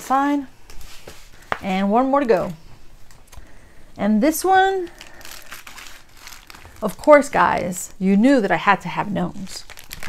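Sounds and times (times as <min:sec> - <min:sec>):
packaging crinkling and rustling: 0:04.8 - 0:07.5, 0:09.4 - 0:10.0.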